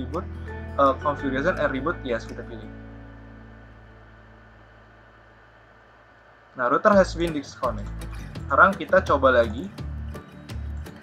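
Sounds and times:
low hum with hiss: 0:00.0 - 0:11.0.

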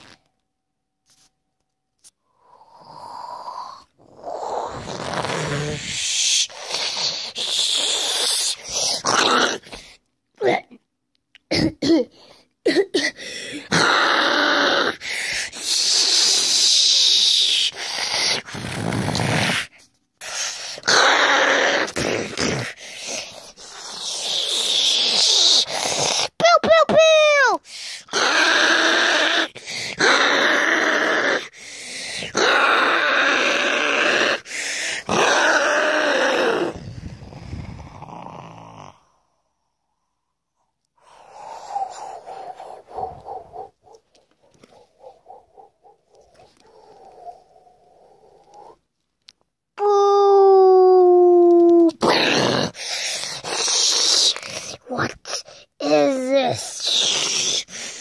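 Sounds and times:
child roaring and growling: 0:03.4 - 0:09.8, 0:13.5 - 0:18.2, 0:20.8 - 0:31.6, 0:32.2 - 0:39.2, 0:49.8 - 0:52.8, 0:53.4 - 0:57.7.

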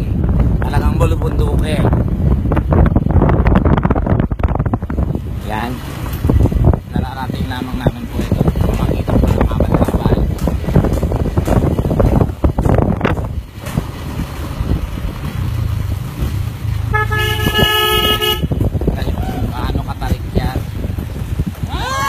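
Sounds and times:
microphone handling noise: 0:00.0 - 0:05.4, 0:06.0 - 0:15.3
wind on microphone: 0:00.0 - 0:22.0
steady pitched toot: 0:16.9 - 0:18.5.

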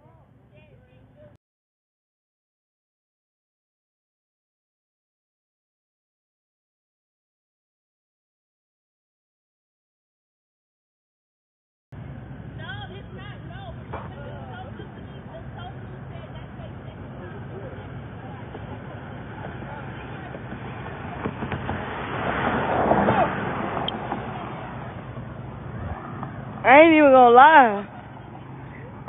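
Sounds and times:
vehicle engine running: 0:12.0 - 0:29.0
faint distant voices: 0:12.5 - 0:29.0
rush of noise: 0:17.2 - 0:29.0.

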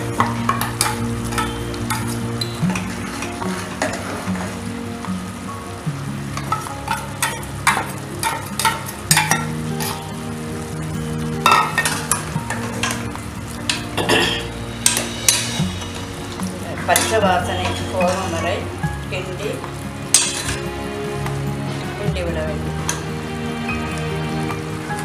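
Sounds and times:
metal ladle scraping pot: 0:00.0 - 0:04.6, 0:06.4 - 0:10.2, 0:11.5 - 0:18.8, 0:20.1 - 0:20.8
background music low notes: 0:00.0 - 0:25.0.

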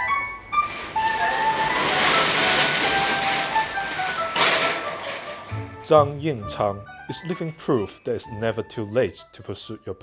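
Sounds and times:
background music melody: 0:00.0 - 0:10.0
metal roller shutter rattling: 0:00.6 - 0:05.7.

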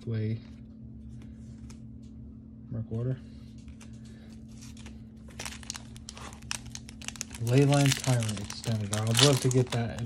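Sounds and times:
steady low hum: 0:00.0 - 0:10.0
handling of cards: 0:03.6 - 0:10.0
foil wrapper crinkling: 0:04.5 - 0:10.0.

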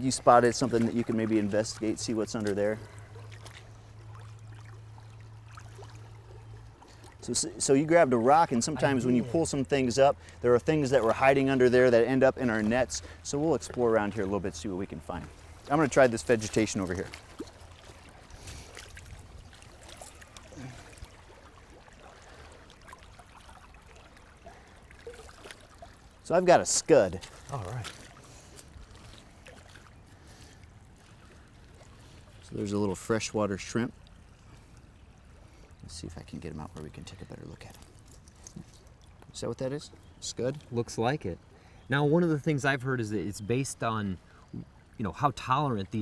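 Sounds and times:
stream water splashing and trickling: 0:00.0 - 0:46.0.

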